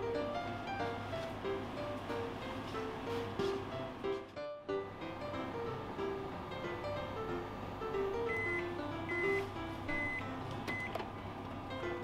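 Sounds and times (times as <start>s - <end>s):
oven timer beeps: 8.2s - 11.0s.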